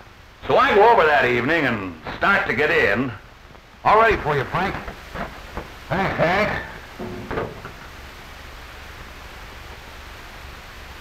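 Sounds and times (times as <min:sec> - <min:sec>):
film soundtrack hiss: 0:00.0 - 0:11.0
low hum: 0:06.7 - 0:08.3.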